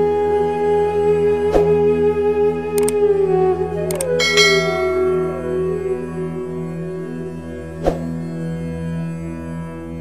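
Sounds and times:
flute music over drone: 0.0s - 10.0s
sharp click: 3.9s - 4.1s
bell chime ringing: 4.2s - 6.0s.

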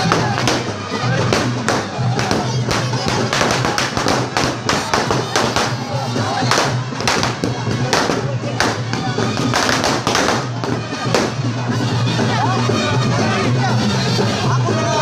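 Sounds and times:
firecrackers banging: 0.0s - 12.2s
crowd noise: 0.0s - 15.0s
music: 0.0s - 15.0s.

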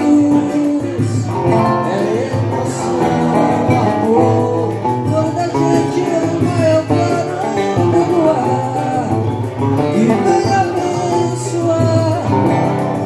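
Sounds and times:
person singing slow melody: 0.0s - 13.0s
plucked and strummed guitars: 0.0s - 13.0s.

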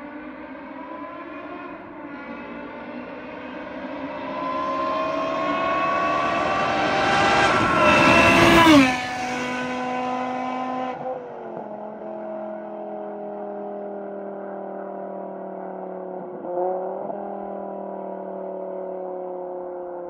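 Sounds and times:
car engine passing at speed: 0.0s - 20.0s.

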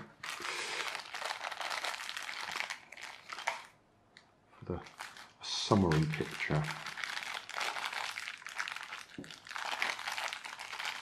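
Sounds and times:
plastic bags crinkling: 0.1s - 3.8s, 4.8s - 11.0s.

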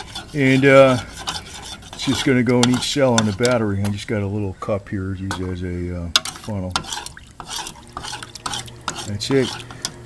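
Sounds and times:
metal spoon stirring in plastic cup: 0.0s - 3.6s, 6.2s - 10.0s.

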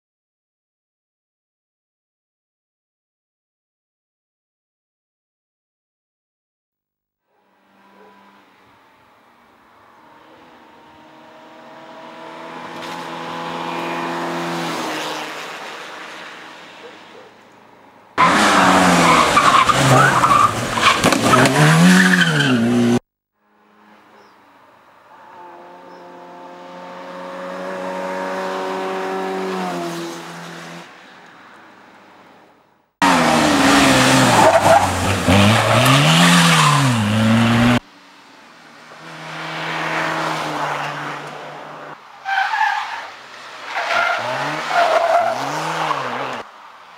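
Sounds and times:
racing car engine at high revs: 9.9s - 15.8s, 18.2s - 23.0s, 25.2s - 30.9s, 33.0s - 37.8s, 38.8s - 42.0s, 43.7s - 46.5s.

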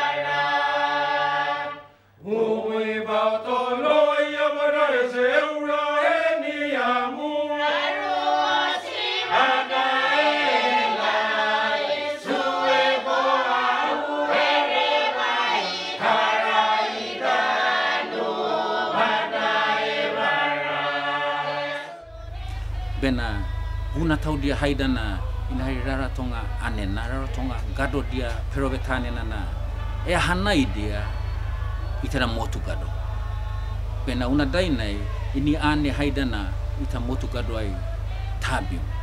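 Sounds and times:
choir singing in harmony: 0.0s - 39.0s.

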